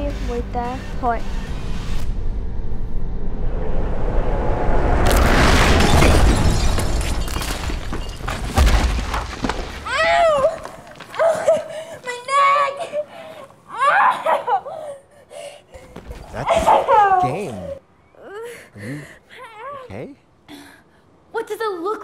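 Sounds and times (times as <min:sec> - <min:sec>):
low rumble: 0:00.9 - 0:08.2
explosion blast: 0:03.2 - 0:09.4
debris crashing: 0:05.0 - 0:11.2.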